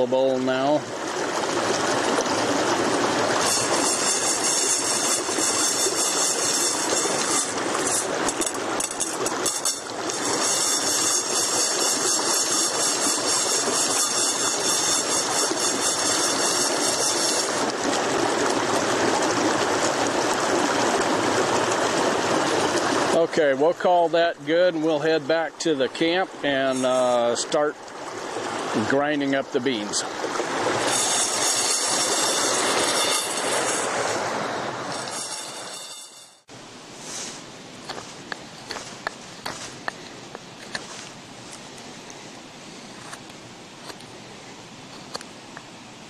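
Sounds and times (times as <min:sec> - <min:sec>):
creek rushing over rocks: 0:00.0 - 0:46.0.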